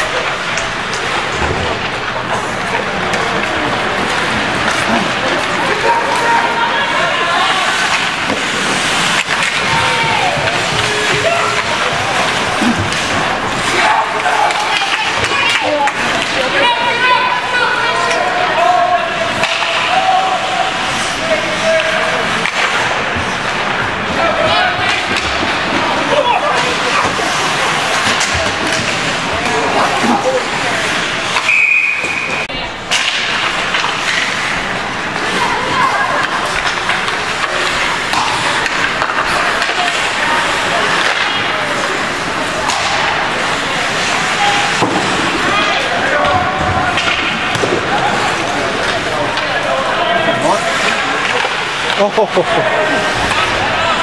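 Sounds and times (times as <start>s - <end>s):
spectators' voices: 0.0s - 54.0s
sticks and puck clattering: 0.0s - 54.0s
skates scraping on ice: 0.1s - 16.7s
high whistle: 31.4s - 32.4s.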